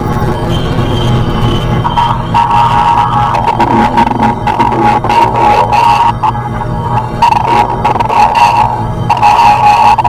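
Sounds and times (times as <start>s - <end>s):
low synth drone: 0.0s - 10.0s
rapid glitchy clicks: 0.0s - 10.0s
steady high tone: 0.0s - 10.0s.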